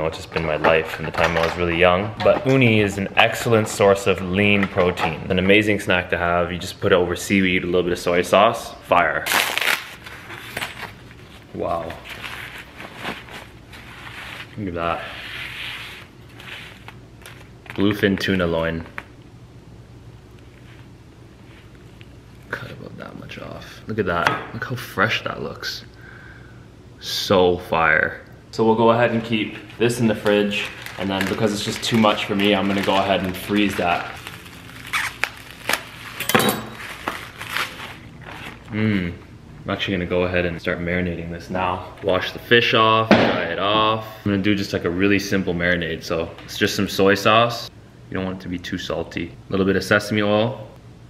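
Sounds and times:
plastic wrap and paper crinkling: 9.2 - 14.7, 15.4 - 19.0, 29.2 - 38.8.

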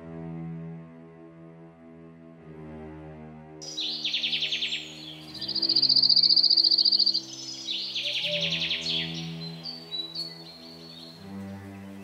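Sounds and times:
low sustained music notes: 0.0 - 12.0
rapid chirring trills: 3.6 - 11.0.

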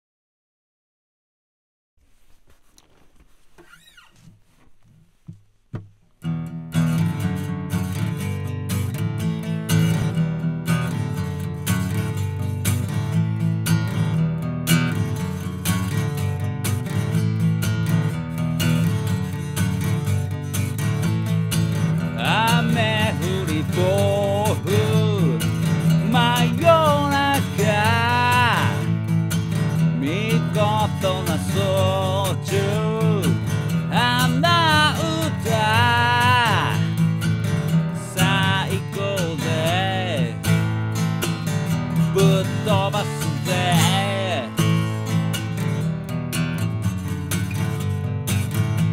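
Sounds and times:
acoustic guitar strumming: 3.6 - 48.9
man singing: 22.1 - 29.1, 29.9 - 37.1, 37.7 - 40.6, 41.9 - 44.9.

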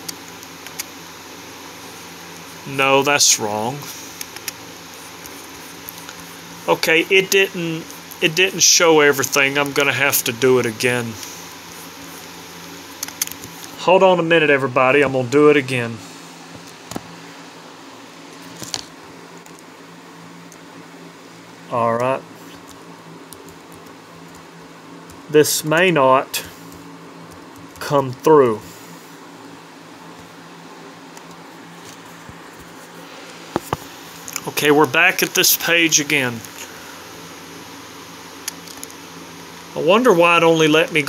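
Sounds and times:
computer mouse clicking: 0.0 - 0.9, 4.2 - 4.6, 13.0 - 13.7
low electrical hum: 0.0 - 41.0.

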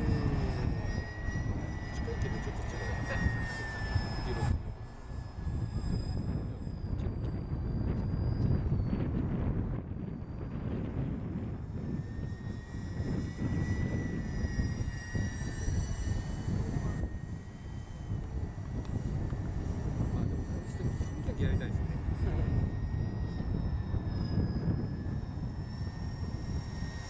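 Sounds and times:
aircraft engines droning overhead: 0.0 - 27.0
wind rumble on microphone: 0.0 - 27.0.

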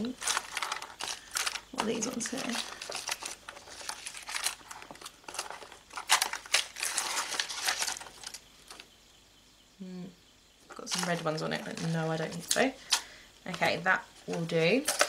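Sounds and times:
plastic sheets crinkling: 0.0 - 8.9, 10.7 - 15.0.

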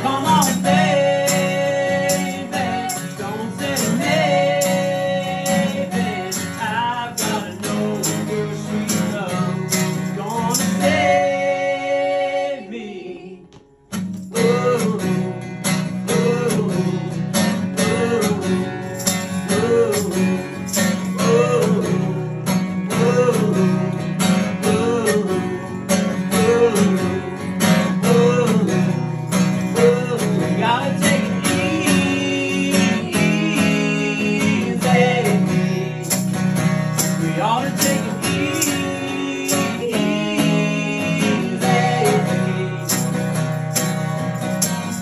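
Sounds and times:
man and woman singing: 0.0 - 13.6, 14.3 - 43.4
acoustic guitar strumming: 0.0 - 45.0.

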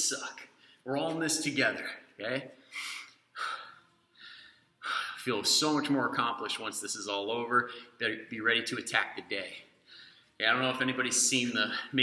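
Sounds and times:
man breathing hard: 2.6 - 5.2.

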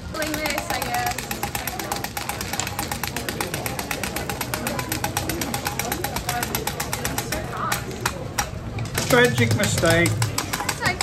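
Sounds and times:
blade chopping hard candy: 0.3 - 11.0.

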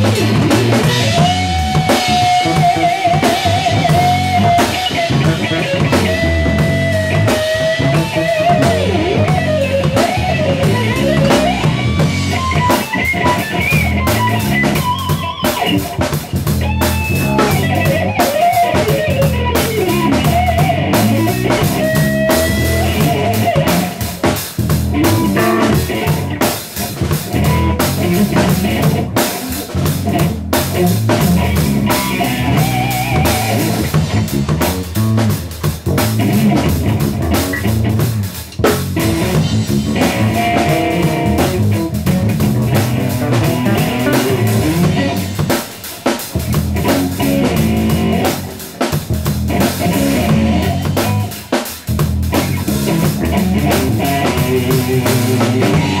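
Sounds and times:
drum kit: 0.0 - 56.0
electric bass guitar: 0.0 - 56.0
electric guitar lead lines: 0.0 - 56.0.

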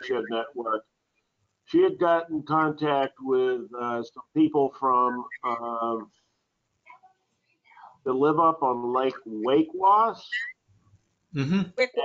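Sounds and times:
faint breathy sounds: 1.7 - 6.3.

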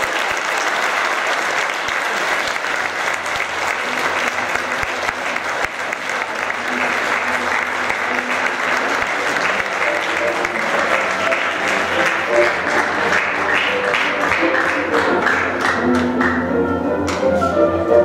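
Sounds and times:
audience applauding: 0.0 - 16.7.

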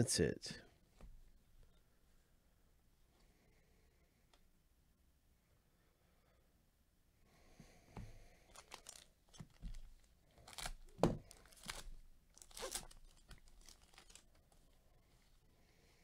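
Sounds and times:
foil wrapper tearing and crinkling: 8.5 - 14.6.

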